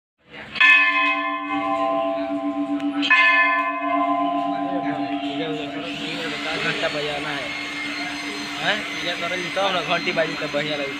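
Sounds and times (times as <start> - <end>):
large brass bell struck: 0.6 - 9.3.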